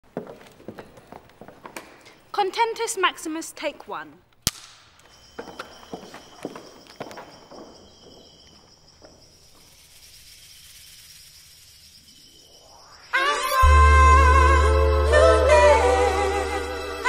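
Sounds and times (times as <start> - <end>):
thin high whine: 5.0 - 17.0.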